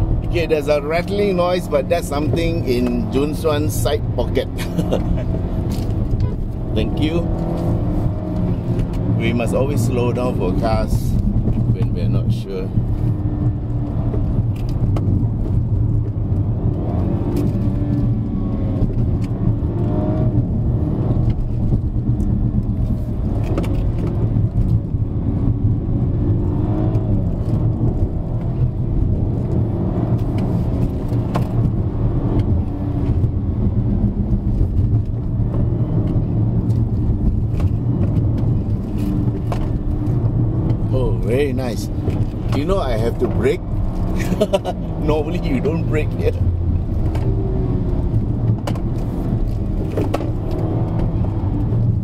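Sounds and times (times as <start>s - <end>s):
car engine revving: 0.0s - 52.0s
road and tyre noise: 0.0s - 52.0s.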